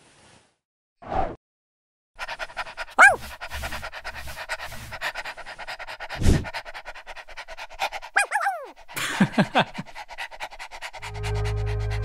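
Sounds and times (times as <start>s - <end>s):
dog panting: 2.2s - 12.0s
dog whimpering: 3.0s - 3.2s, 8.2s - 8.8s
dog whining: 3.0s - 3.2s, 8.2s - 8.7s.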